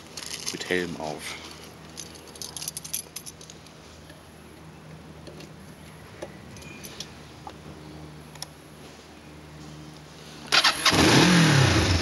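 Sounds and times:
keys jangling and clicking: 0:01.9 - 0:03.6.

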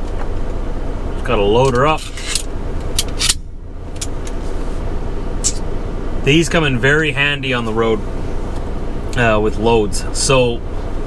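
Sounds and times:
idling truck hum: 0:00.0 - 0:11.0.

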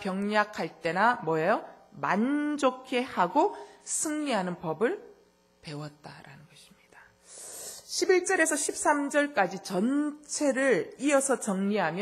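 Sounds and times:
woman speaking: 0:00.0 - 0:12.0
soft breathy hiss: 0:06.4 - 0:08.0.

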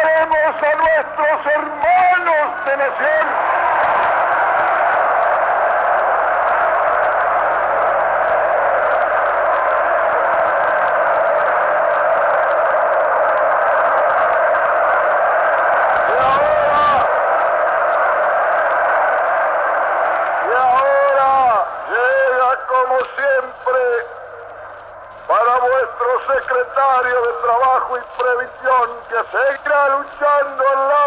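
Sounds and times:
crowd cheering and shouting: 0:00.0 - 0:31.0.

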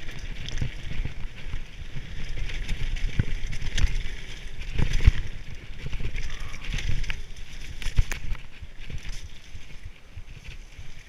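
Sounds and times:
bike rattling over bumps: 0:00.0 - 0:11.0
bike tyres hissing over gravel: 0:00.0 - 0:11.0.

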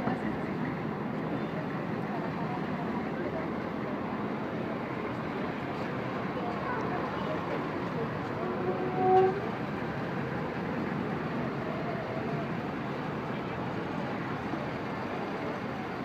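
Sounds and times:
crowd noise: 0:00.0 - 0:16.0
street traffic: 0:00.0 - 0:16.0.

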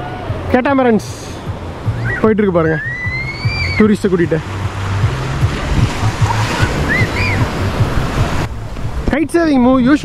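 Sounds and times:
wind buffeting microphone: 0:00.0 - 0:10.0
small waves breaking on beach: 0:02.6 - 0:09.1.

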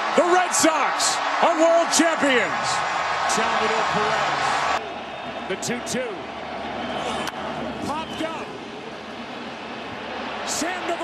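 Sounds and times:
stadium crowd noise: 0:00.0 - 0:11.0
tv commentary: 0:00.2 - 0:04.8, 0:10.4 - 0:11.0.

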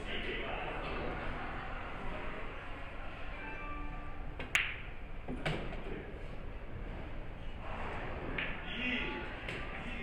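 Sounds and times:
billiard balls clicking: 0:04.4 - 0:04.8
cue tip tapping ball: 0:04.4 - 0:05.7.

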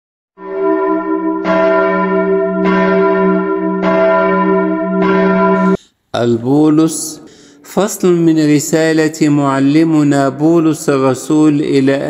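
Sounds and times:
church bell ringing: 0:00.4 - 0:05.8.

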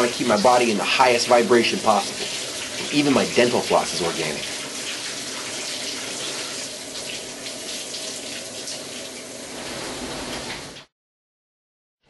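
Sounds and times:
shower water running: 0:00.0 - 0:10.9.

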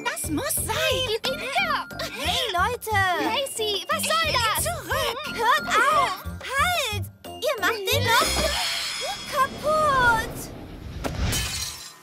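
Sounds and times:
glass crashing: 0:11.0 - 0:12.0.

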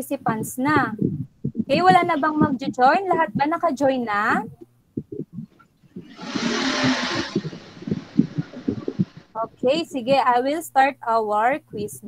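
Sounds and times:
low muffled sounds: 0:00.7 - 0:09.8
rushing hiss of microphone noise: 0:06.1 - 0:09.4.

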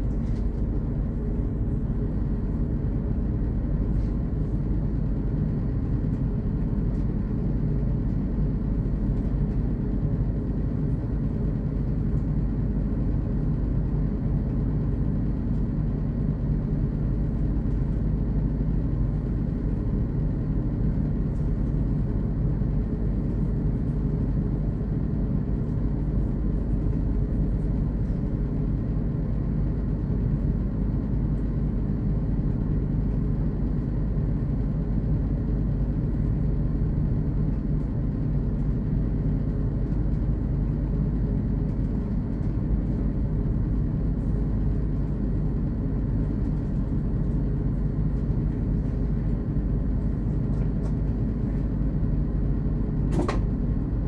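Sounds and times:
train engine and wheel rumble: 0:00.0 - 0:54.0.

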